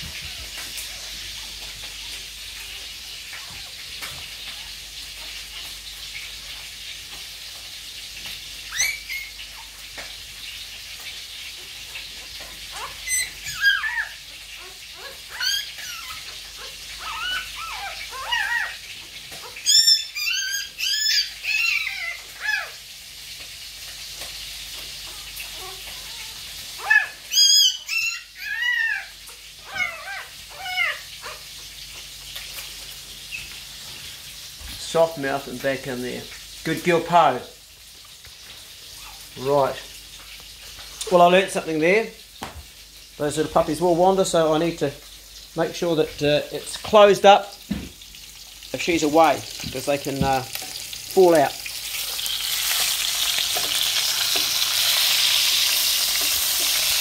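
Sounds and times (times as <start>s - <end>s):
puppy squealing: 8.7s - 9.7s, 12.2s - 22.8s, 25.0s - 31.5s, 38.9s - 39.3s.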